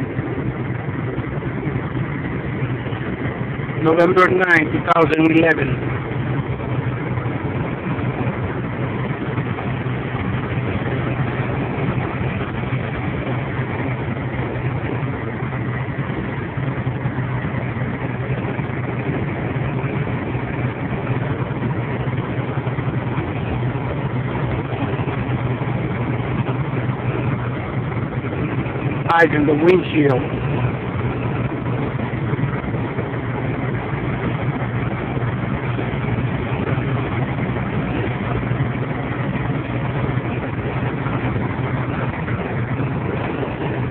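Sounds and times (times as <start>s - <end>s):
constant low hum: 0.0s - 43.9s
truck engine drone: 0.0s - 43.9s
tyres on wet road: 0.0s - 43.9s.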